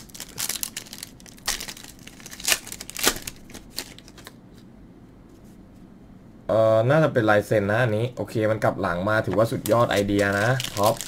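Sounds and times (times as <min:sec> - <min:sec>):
foil wrapper tearing and crinkling: 0:00.0 - 0:04.4, 0:09.6 - 0:11.0.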